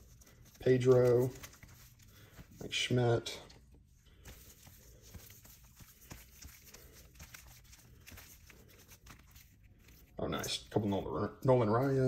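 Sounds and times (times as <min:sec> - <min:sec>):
cards in plastic sleeves flipped: 0:00.0 - 0:02.7, 0:04.2 - 0:10.2.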